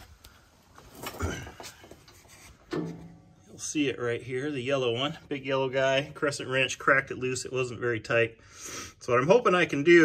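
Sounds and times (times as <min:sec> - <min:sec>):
handling knock and rubbing: 0:00.9 - 0:03.3.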